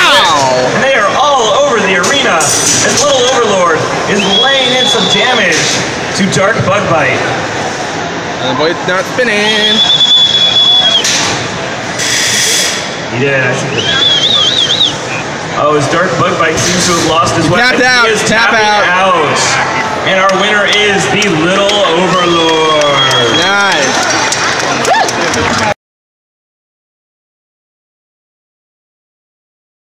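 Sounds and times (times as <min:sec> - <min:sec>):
announcer calling out: 0:00.0 - 0:05.6, 0:17.2 - 0:23.9
harsh rushing scraping noise: 0:15.8 - 0:22.3.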